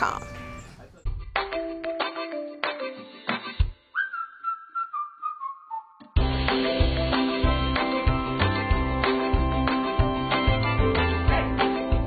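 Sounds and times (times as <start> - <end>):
whistled tone sliding down: 3.9 - 6.2.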